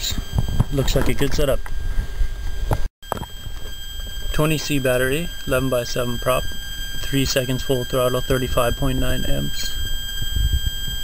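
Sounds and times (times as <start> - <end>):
microphone handling rumble: 0.0 - 4.4, 8.2 - 11.0.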